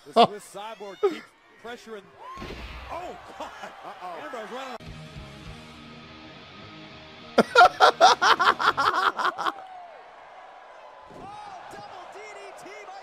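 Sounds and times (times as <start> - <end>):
man laughing hard: 7.4 - 9.6
crowd noise with commentary: 10.8 - 13.0.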